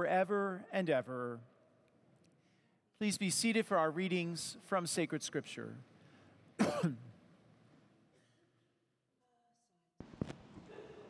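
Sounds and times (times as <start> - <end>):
person coughing: 6.6 - 7.1.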